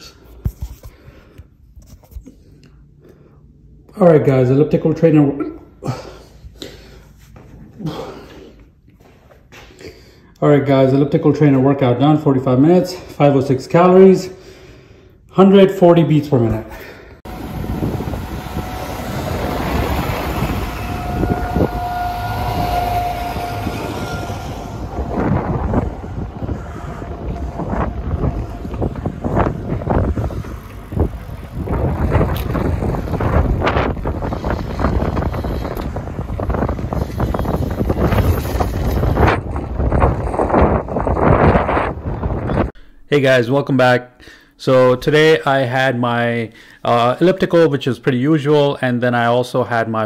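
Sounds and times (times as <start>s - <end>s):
low rumble of vehicles: 13.9s - 43.1s
steady machine whine: 17.2s - 42.7s
wind buffeting microphone: 17.2s - 42.8s.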